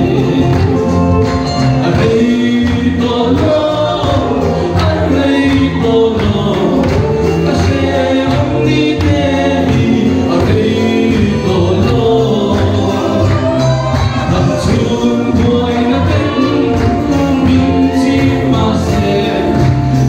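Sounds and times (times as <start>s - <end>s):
congregation singing a hymn: 0.0s - 20.0s.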